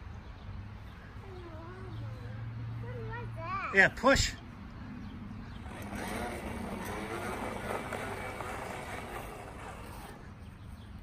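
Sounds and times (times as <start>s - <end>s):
high motor whine: 5.6s - 10.5s
toy lawnmower whirring: 5.6s - 10.6s.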